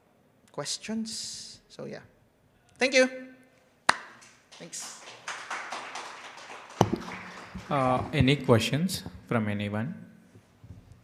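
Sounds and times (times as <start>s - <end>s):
audience applauding: 4.2s - 8.9s
sharp knock: 6.8s - 7.3s.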